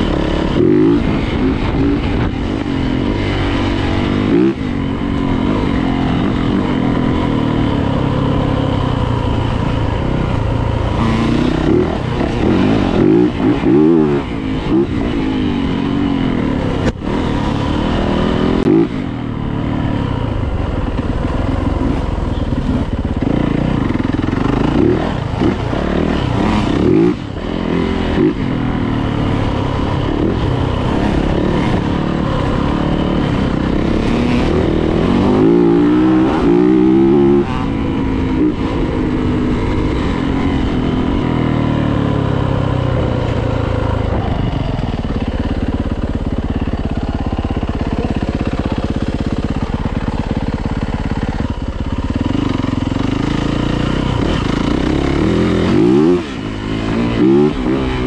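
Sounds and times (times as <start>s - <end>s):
dirt bike engine running: 0.0s - 58.0s.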